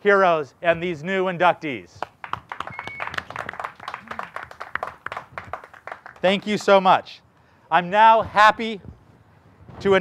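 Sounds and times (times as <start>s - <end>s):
people clapping: 2.0s - 6.8s.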